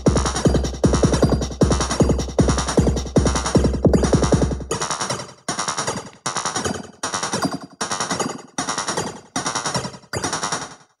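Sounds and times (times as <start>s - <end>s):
drum machine stuttering roll: 0.0s - 10.6s.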